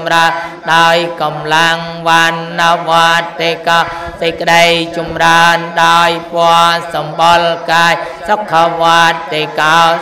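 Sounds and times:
monk chanting into a microphone: 0.0 - 10.0.

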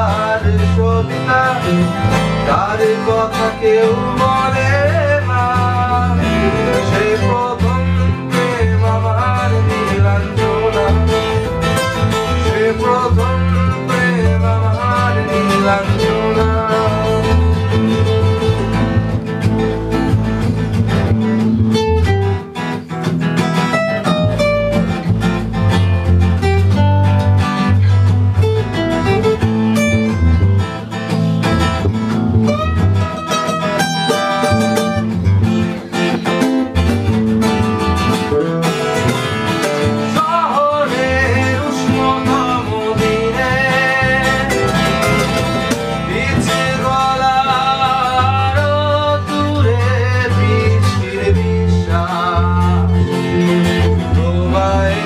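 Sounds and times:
acoustic guitars strumming: 0.0 - 55.0
electric bass guitar: 0.0 - 55.0.

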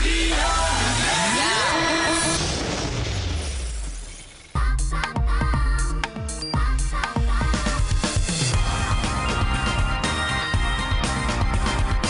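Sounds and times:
electronic dance music: 0.0 - 2.4, 4.6 - 12.0
crash transition effect: 0.6 - 4.5.

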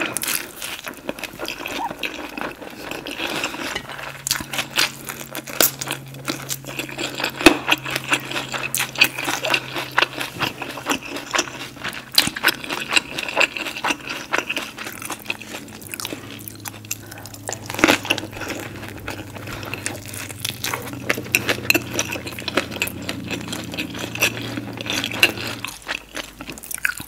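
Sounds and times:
close-miked chewing: 0.0 - 27.0.

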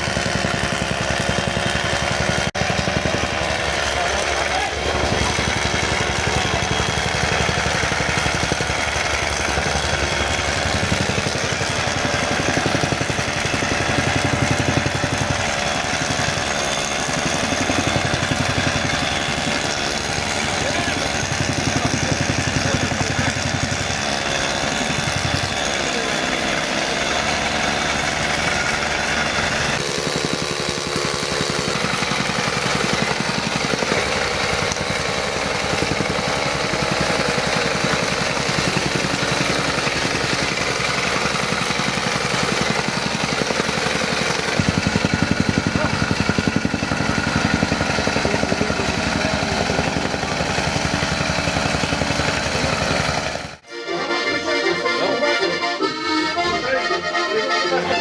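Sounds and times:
diesel engine idling: 0.0 - 58.0
people's voices: 3.4 - 6.8, 20.5 - 23.4, 25.5 - 27.0, 53.7 - 58.0.

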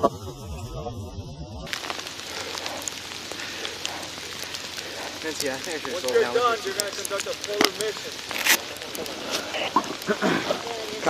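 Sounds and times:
muffled voices: 0.0 - 11.0
steady outdoor hiss: 0.0 - 11.0
light clicks and crackles: 1.7 - 11.0.

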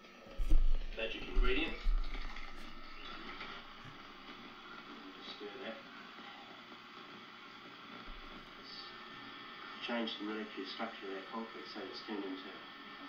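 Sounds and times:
video recording hiss: 0.0 - 13.0.

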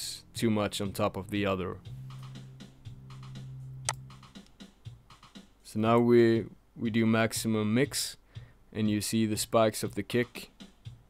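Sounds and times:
sharp click: 3.9 - 4.6.

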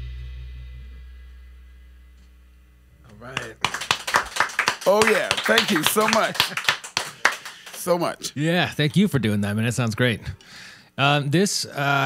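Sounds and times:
man speaking: 3.1 - 3.9, 4.8 - 6.6, 7.7 - 10.3, 11.0 - 12.0
small group clapping: 3.1 - 8.2.

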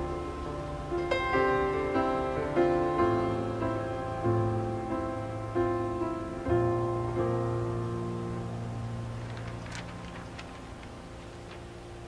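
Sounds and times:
piano chord ringing: 0.0 - 12.0
faint soft clicks: 9.2 - 11.7.

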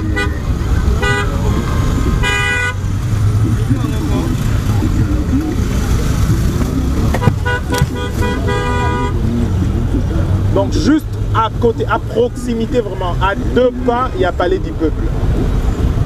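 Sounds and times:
car horns honking: 0.0 - 3.2, 6.8 - 9.7
traffic rumble: 0.0 - 16.0.

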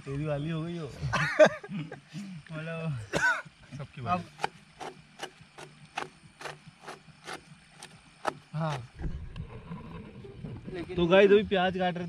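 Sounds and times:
voices and laughter: 0.9 - 3.8
knife slicing onion: 4.3 - 8.9.

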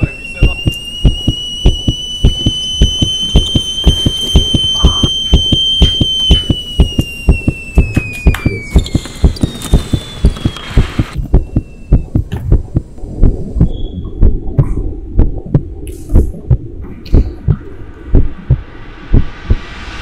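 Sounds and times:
falling whistle-like tone: 0.0 - 12.2, 13.6 - 14.3, 18.2 - 20.0
fast heartbeat thumps: 0.0 - 19.7
steady hum: 0.0 - 20.0.

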